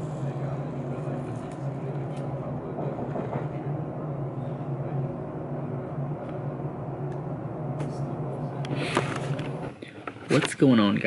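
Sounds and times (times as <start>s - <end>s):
faint voices: 0.0s - 10.6s
low room hum: 0.0s - 11.0s.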